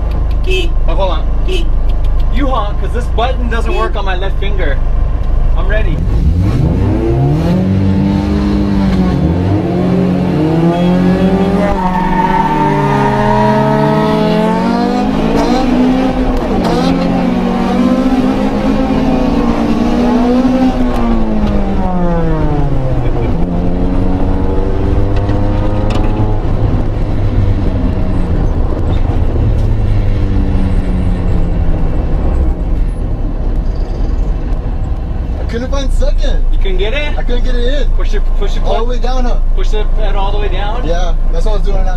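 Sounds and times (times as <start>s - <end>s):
race car engines revving: 6.0s - 35.6s.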